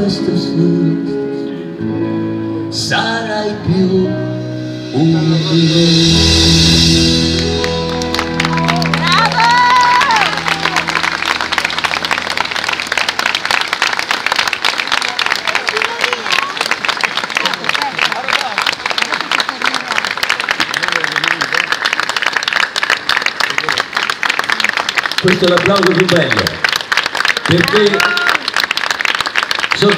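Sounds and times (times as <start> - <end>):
backing music held notes: 0.3 - 14.4
audience applauding: 7.4 - 29.9.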